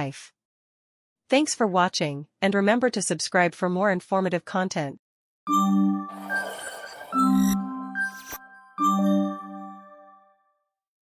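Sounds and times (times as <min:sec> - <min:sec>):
chime-like jingle note ringing: 0:05.5 - 0:10.5.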